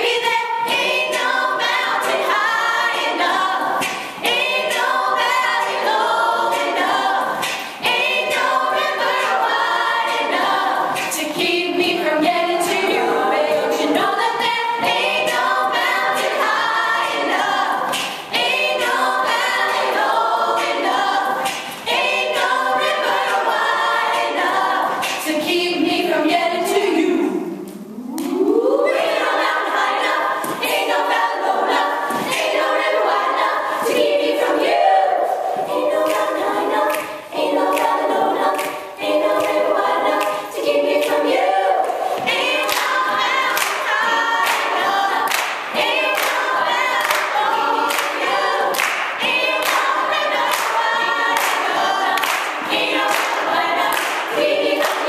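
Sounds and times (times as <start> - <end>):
women singing in close harmony: 0.0 - 55.0.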